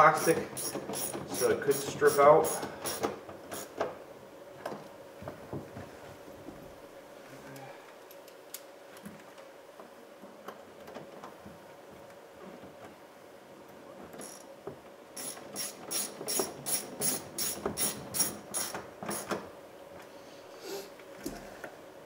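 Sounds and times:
ratchet clicks: 0.2 - 1.5.

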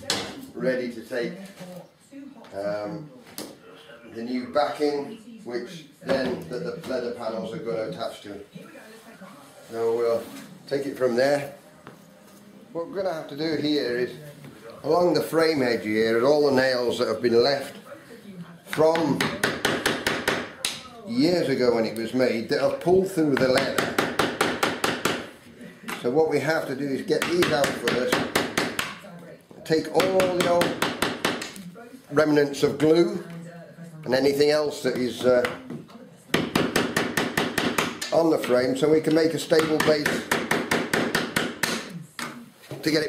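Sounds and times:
mallet tapping on hand tool: 30.0 - 31.6, 36.3 - 41.9.

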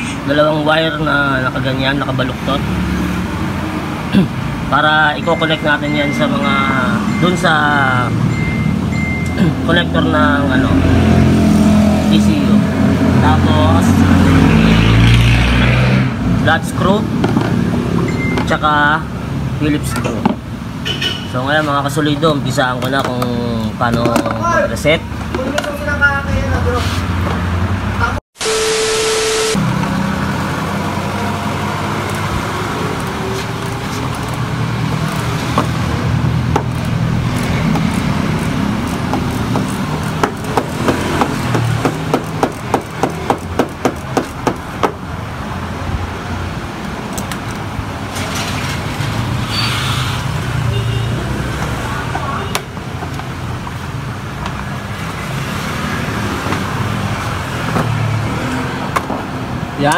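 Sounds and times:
traffic and engine noise: 0.0 - 59.9
beep: 5.1 - 9.6, 18.0 - 18.6, 28.4 - 29.7
static burst: 28.4 - 29.8.

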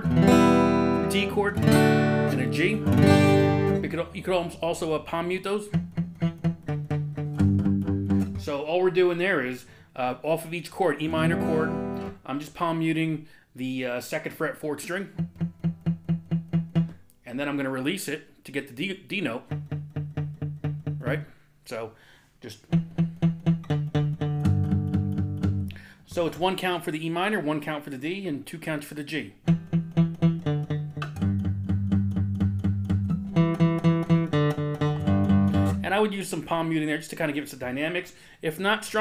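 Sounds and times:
palm-muted acoustic guitar notes: 0.0 - 8.6, 11.0 - 12.2, 14.8 - 17.0, 19.4 - 21.2, 22.6 - 25.9, 29.4 - 36.0.

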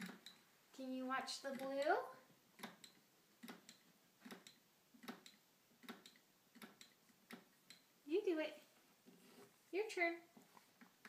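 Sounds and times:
soft electronic ticks: 1.4 - 7.9.

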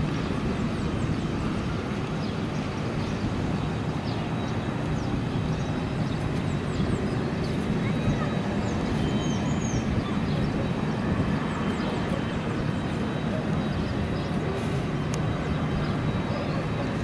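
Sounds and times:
propeller airplane engine drone: 0.0 - 17.0.

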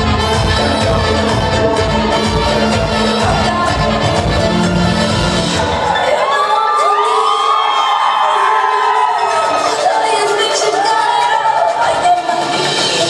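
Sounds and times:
audience screaming and cheering: 0.0 - 13.0.

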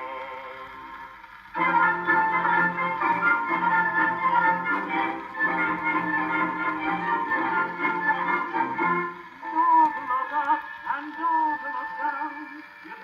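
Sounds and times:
singing voice with vibrato: 0.0 - 8.8, 9.4 - 13.0
orchestra on gramophone record: 0.0 - 13.0.

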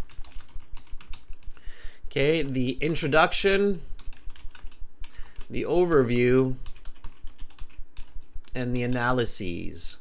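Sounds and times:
computer keyboard typing: 0.0 - 3.3, 4.0 - 9.3.

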